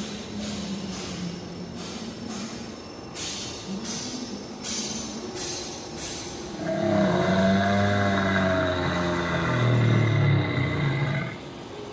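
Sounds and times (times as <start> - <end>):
recorded dinosaur roar: 6.6 - 11.4.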